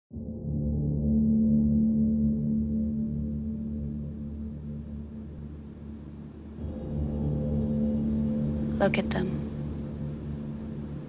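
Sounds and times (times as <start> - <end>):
gong-like drone: 0.2 - 11.0
low rumble: 0.2 - 11.0.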